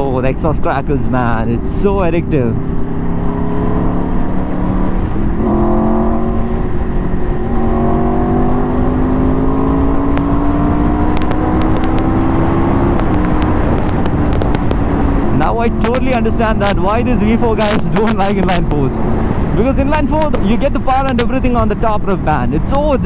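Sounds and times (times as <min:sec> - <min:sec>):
wind rush: 0:00.0 - 0:23.0
motorcycle engine accelerating: 0:01.4 - 0:23.0.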